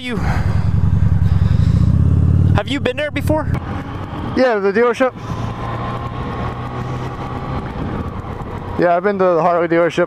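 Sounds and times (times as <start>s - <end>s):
motorcycle engine at low revs: 0.0s - 9.0s.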